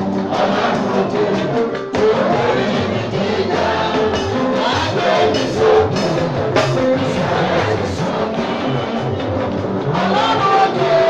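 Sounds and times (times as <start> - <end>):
loud praise music with singing: 0.0 - 11.0.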